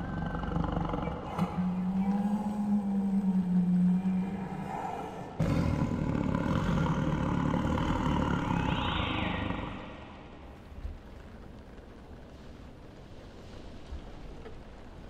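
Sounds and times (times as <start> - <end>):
loud low rumble: 0.0 - 10.9
low drone: 0.0 - 11.5
high sweeping sound: 7.9 - 10.4.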